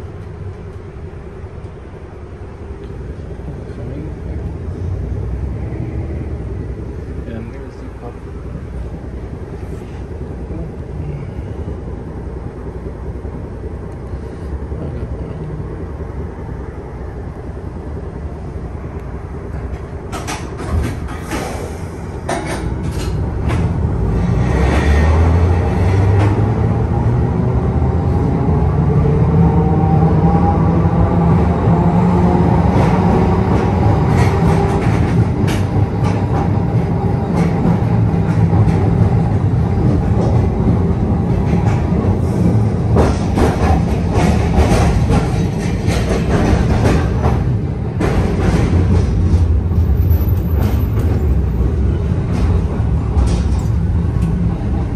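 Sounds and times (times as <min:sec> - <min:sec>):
streetcar rumbling: 0:00.0 - 0:54.9
wheels rumbling on rails: 0:00.0 - 0:54.9.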